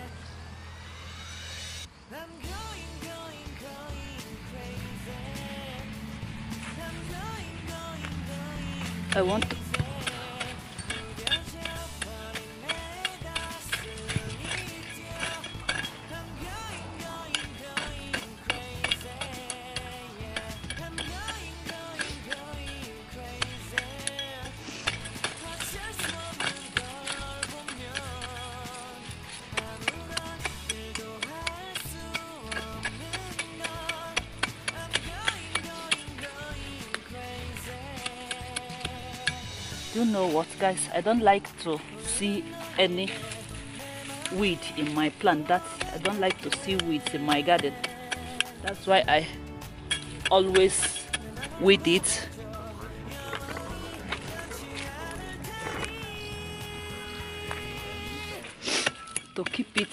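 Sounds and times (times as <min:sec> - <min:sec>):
pop song with regular beat: 0:00.0 - 0:59.0.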